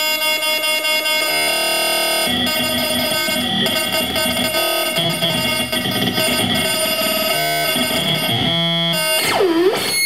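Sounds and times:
electronic drone: 0.0 - 10.0
fast buzzing electronic pulse: 1.0 - 10.0.

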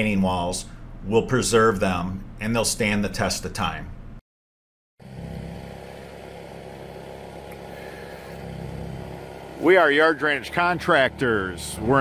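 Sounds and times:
engine running steadily: 5.0 - 12.0.

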